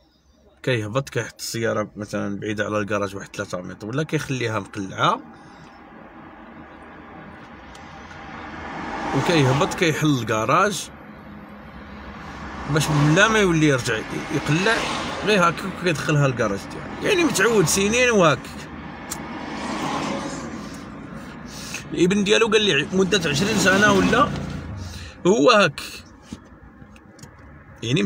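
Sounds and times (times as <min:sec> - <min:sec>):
muffled car passing by: 0:05.2 - 0:25.2.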